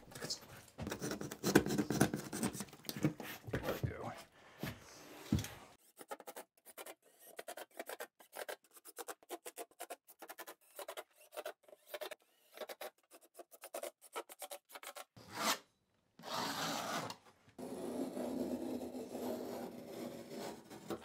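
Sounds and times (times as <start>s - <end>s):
utility knife cutting foam: 5.8s - 21.0s.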